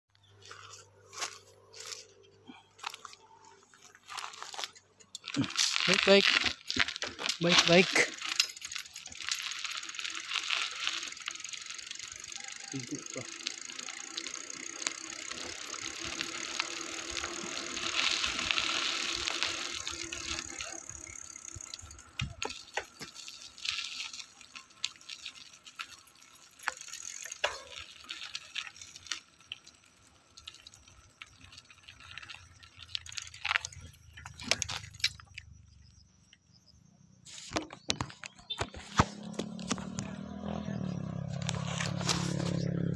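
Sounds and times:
bicycle freewheel ticking: 0:04.1 - 0:35.6.

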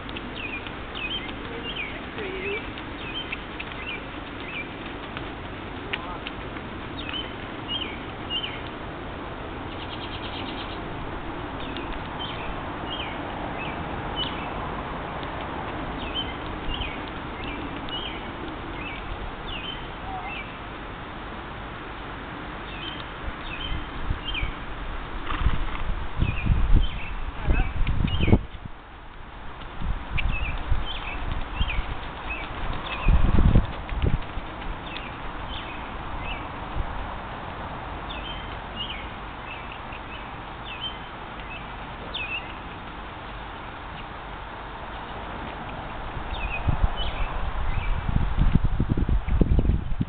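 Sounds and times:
steady outdoor hiss: 0:00.0 - 0:50.0
small bird calling: 0:00.1 - 0:04.8, 0:06.9 - 0:08.7, 0:09.6 - 0:10.9, 0:16.0 - 0:20.6, 0:30.2 - 0:33.3, 0:38.1 - 0:42.8.

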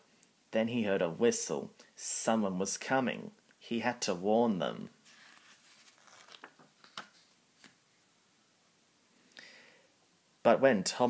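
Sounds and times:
paper page being turned: 0:05.0 - 0:07.8.

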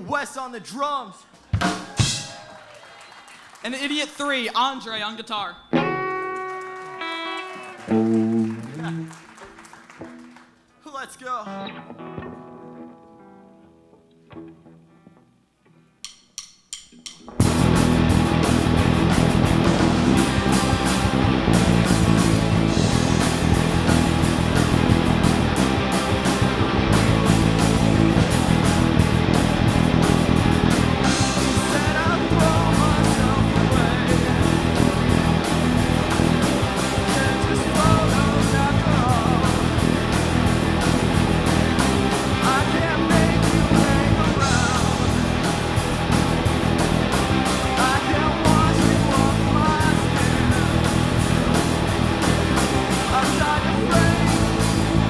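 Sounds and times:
rock band playing: 0:01.4 - 0:02.5, 0:04.4 - 0:10.6, 0:11.3 - 0:55.0.

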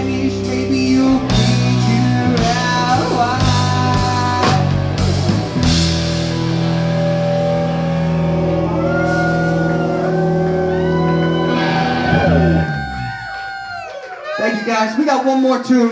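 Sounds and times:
live rock band playing: 0:00.0 - 0:13.3.

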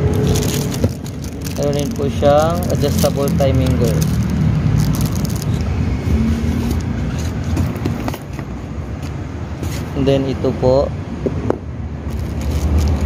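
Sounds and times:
plastic packaging crinkling: 0:00.0 - 0:05.7, 0:12.1 - 0:13.0
steady low rumble: 0:00.0 - 0:09.6.

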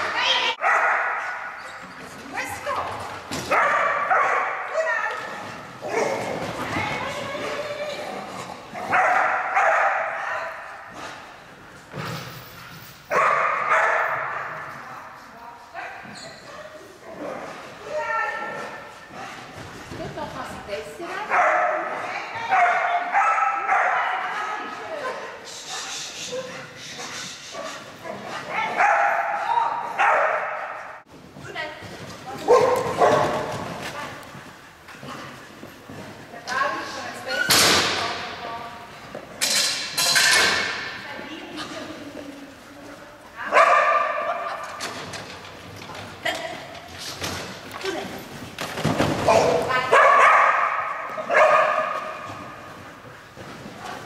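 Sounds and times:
dogs barking and yipping: 0:00.5 - 0:01.9, 0:03.4 - 0:06.5, 0:13.1 - 0:14.6, 0:27.0 - 0:31.0, 0:49.3 - 0:52.7.

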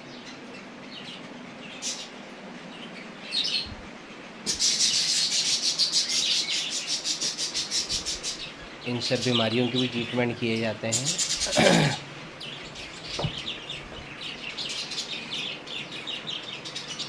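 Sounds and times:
small birds chirping: 0:00.0 - 0:17.0.

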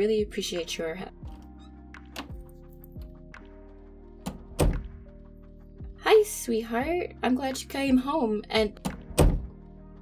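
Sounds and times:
soft background music: 0:00.0 - 0:10.0
dull thunks: 0:04.3 - 0:05.0.

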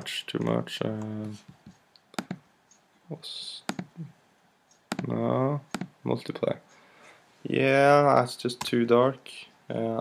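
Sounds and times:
computer mouse clicks: 0:01.0 - 0:02.8, 0:03.7 - 0:04.0, 0:04.7 - 0:06.0.

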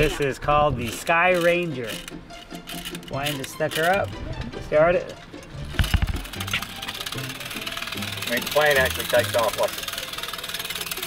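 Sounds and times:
clockwork motor buzzing rattle: 0:00.0 - 0:04.2, 0:05.4 - 0:11.0
background music: 0:00.0 - 0:10.8.

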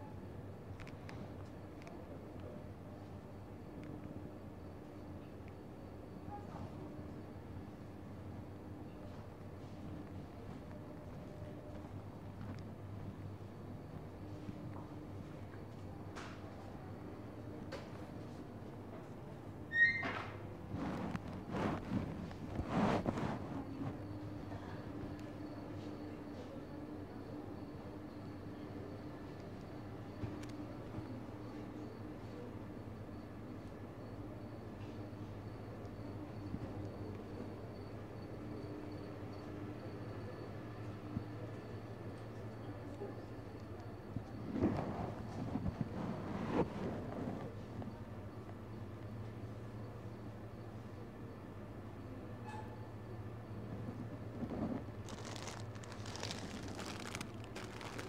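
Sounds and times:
rustling and shuffling: 0:20.7 - 0:24.1, 0:54.3 - 0:58.0
rustling: 0:55.0 - 0:58.0.

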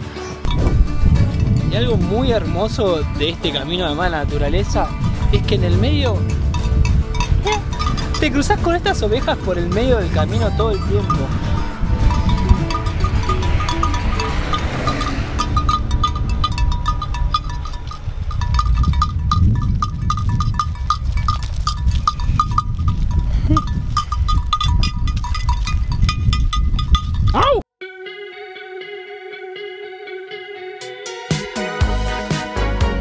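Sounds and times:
background music: 0:00.0 - 0:17.5, 0:27.8 - 0:33.0
wind rumbling on microphone: 0:00.4 - 0:27.6.

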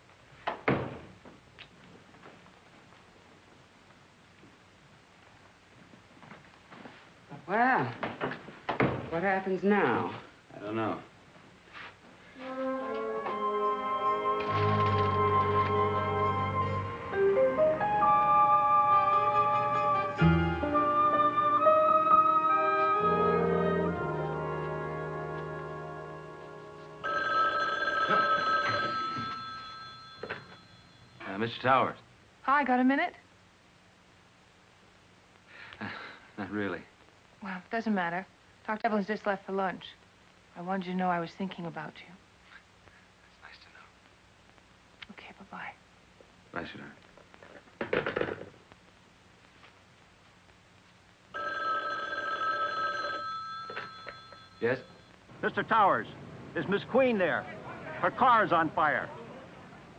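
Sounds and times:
orchestral film music: 0:12.4 - 0:27.0
telephone bell ringing: 0:27.0 - 0:31.2, 0:51.4 - 0:55.1.

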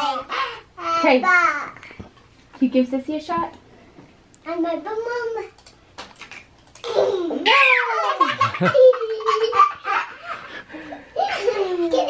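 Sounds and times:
child's high-pitched laugh: 0:06.9 - 0:10.5, 0:11.1 - 0:12.0
people laughing: 0:08.0 - 0:12.0.

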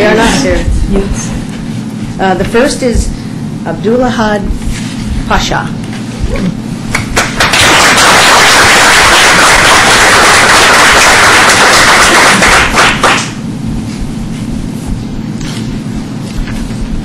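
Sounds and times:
audience applauding: 0:07.0 - 0:13.4.

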